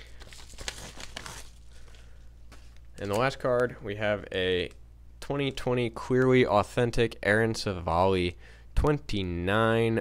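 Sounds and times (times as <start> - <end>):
package crinkling and tearing: 0.0 - 3.3.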